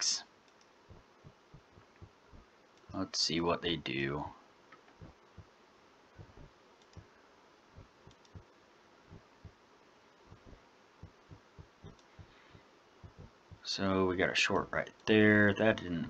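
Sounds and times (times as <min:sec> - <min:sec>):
computer mouse clicks: 0:00.5 - 0:00.7, 0:06.3 - 0:07.1, 0:08.0 - 0:08.5, 0:11.8 - 0:12.3.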